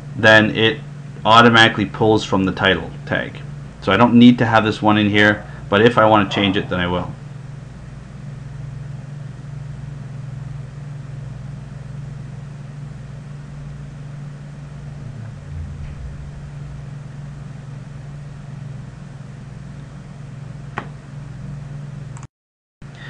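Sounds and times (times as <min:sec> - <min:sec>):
steady low hum: 0:13.0 - 0:21.4.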